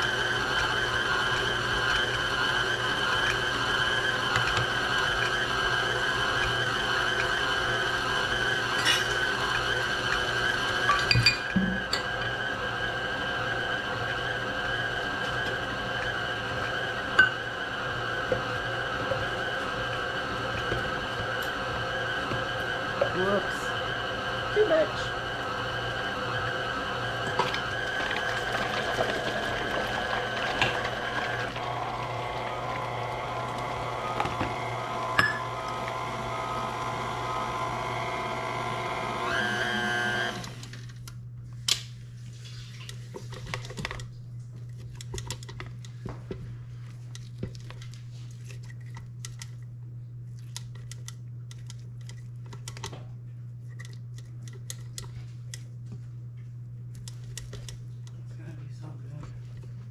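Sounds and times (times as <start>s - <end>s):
stand mixer motor whining: 0.0s - 40.9s.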